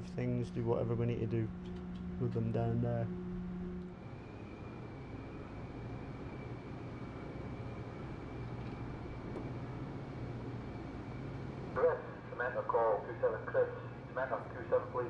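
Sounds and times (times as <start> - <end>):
faint high whine: 0.0 - 15.0
low machinery hum: 0.0 - 15.0.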